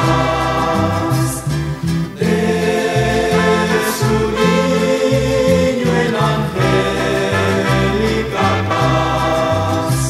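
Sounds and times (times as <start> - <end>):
choir singing: 0.0 - 10.0
instrumental accompaniment with bass line: 0.0 - 10.0.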